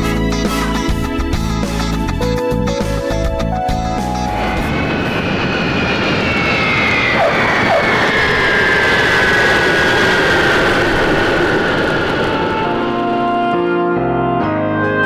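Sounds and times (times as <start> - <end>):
jet airliner engine roar: 0.0 - 15.0.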